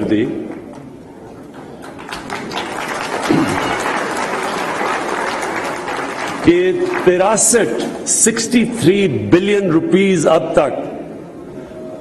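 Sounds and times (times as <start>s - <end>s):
audience applauding: 1.5s - 7.6s.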